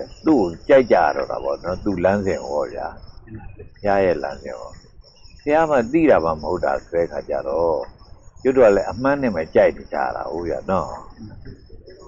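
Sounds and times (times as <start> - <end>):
man preaching: 0.0 - 4.8, 5.5 - 7.9, 8.5 - 11.4
crickets chirring: 0.0 - 12.0.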